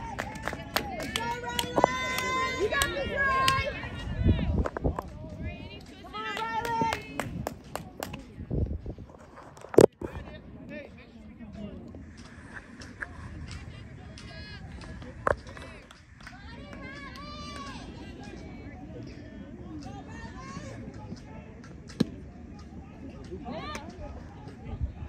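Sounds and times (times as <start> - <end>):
people talking and calling out: 0.0 - 25.0.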